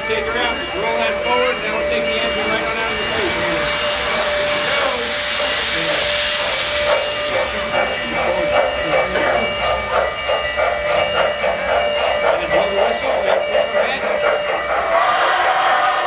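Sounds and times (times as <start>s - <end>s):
model locomotive chuffing: 0.0s - 16.0s
model train steam hiss: 0.6s - 16.0s.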